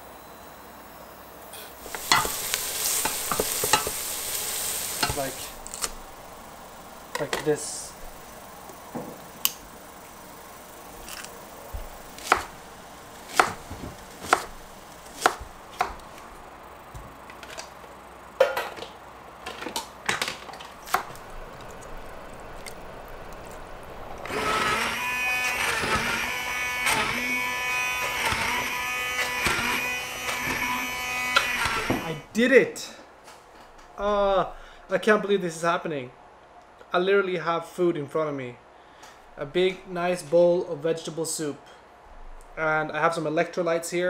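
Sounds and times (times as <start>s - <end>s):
knife chopping on wooden board: 12.2s - 12.5s, 13.3s - 16.0s.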